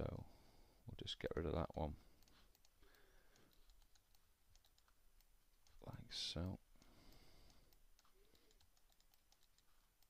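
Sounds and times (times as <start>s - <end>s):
mouse and keyboard clicks: 1.7s - 5.8s, 6.8s - 10.0s.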